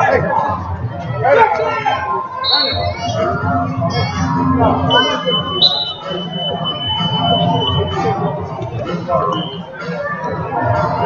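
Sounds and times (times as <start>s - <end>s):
gym chatter: 0.0s - 11.0s.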